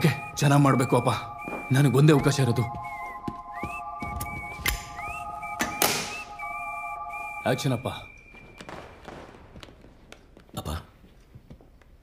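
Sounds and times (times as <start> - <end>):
sustained chord: 0.0 - 8.1
whistled melody with swoops: 0.0 - 9.4.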